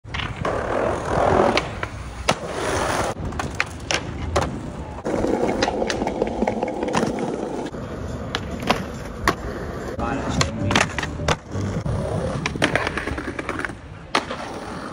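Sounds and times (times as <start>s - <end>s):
skateboards rolling on concrete: 0.0s - 14.9s
skateboard clacks on ground: 0.1s - 2.5s, 3.1s - 9.5s, 10.2s - 11.6s, 12.4s - 14.9s
skateboard scraping along ledge: 0.1s - 14.9s.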